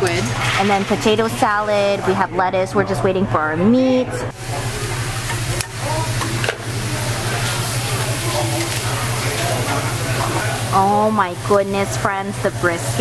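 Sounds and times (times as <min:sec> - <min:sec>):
faint voices: 0:01.4 - 0:13.0
meat sizzling on a grill: 0:04.3 - 0:13.0.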